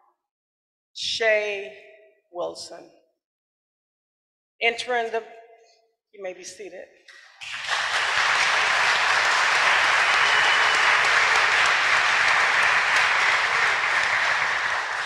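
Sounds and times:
audience applauding: 0:07.2 - 0:15.0.

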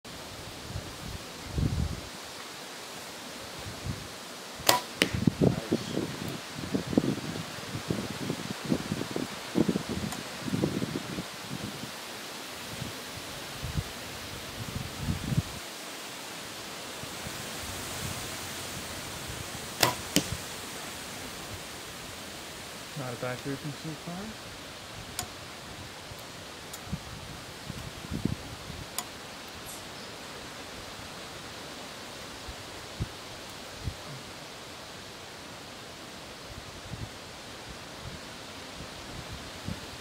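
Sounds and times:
arrow hitting target: 0:04.6 - 0:05.3, 0:19.8 - 0:20.4
bow string snapping: 0:04.6 - 0:05.3, 0:19.8 - 0:20.4.

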